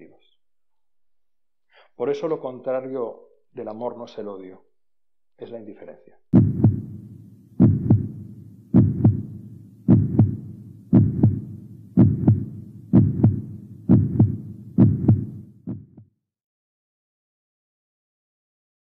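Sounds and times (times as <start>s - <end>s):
heartbeat thumps: 6.3s - 16.1s.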